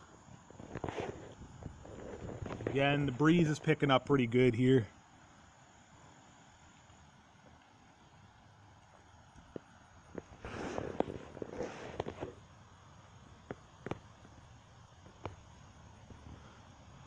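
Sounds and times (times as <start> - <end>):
faint outdoor background: 0.0 - 17.0.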